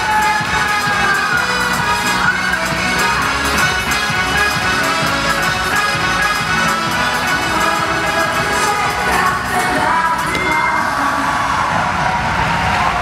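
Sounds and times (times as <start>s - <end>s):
crowd cheering and shouting: 0.0s - 13.0s
dance music: 0.0s - 13.0s.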